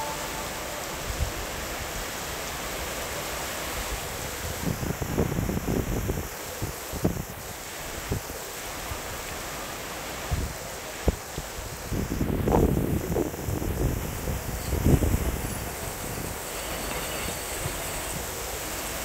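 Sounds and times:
heavy rain falling: 0.0s - 19.0s
wind rumbling on microphone: 4.0s - 8.3s, 10.2s - 18.3s.

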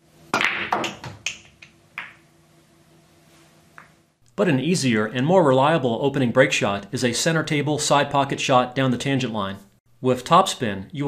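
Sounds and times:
pool balls clicking: 0.3s - 2.3s.

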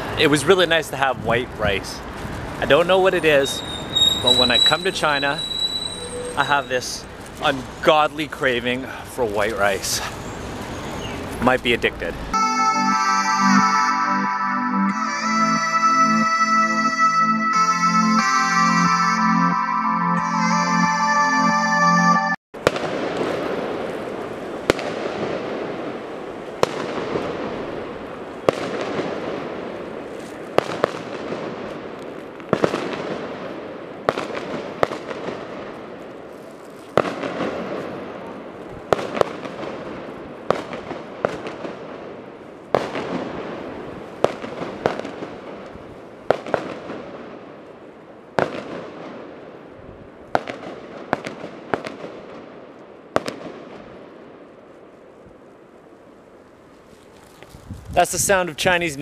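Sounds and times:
fireworks bangs echoing: 22.6s - 36.1s, 36.9s - 47.6s, 48.4s - 49.6s, 50.3s - 54.4s
distant fireworks blasts: 22.6s - 55.8s.

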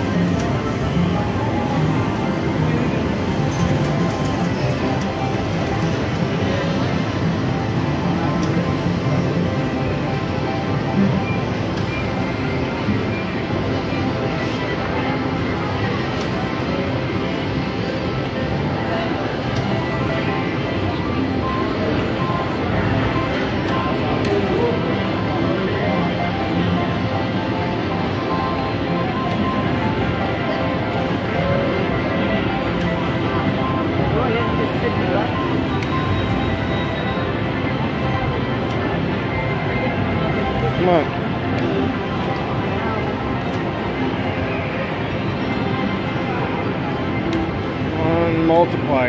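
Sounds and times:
murmur of voices: 0.0s - 49.0s
slot machine music: 0.0s - 49.0s.

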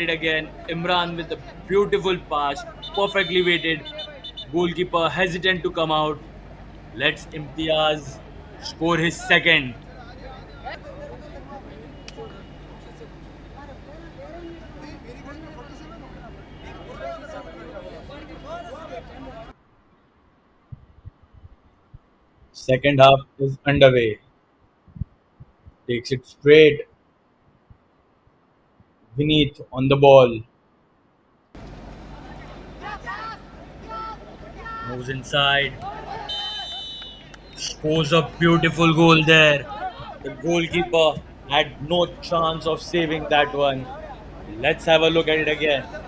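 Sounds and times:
distant chatter: 0.0s - 19.6s, 31.6s - 46.0s
steady low hum: 19.8s - 26.8s, 37.3s - 46.0s
players shouting to each other: 32.2s - 46.0s.

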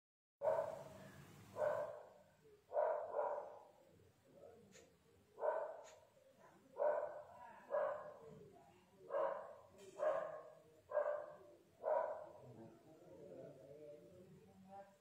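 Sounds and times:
dog barking: 0.4s - 3.8s, 5.4s - 8.3s, 9.1s - 12.6s.

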